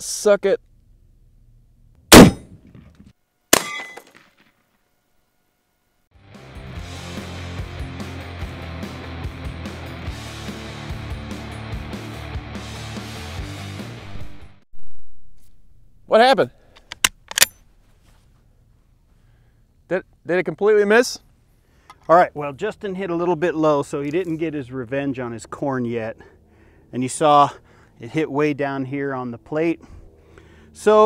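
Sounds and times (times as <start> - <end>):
bullet dinging steel plate: 2.1 - 2.8, 3.6 - 4.3, 17.3 - 17.7
rifle shot: 2.1 - 4.5
background music: 6.2 - 14.6.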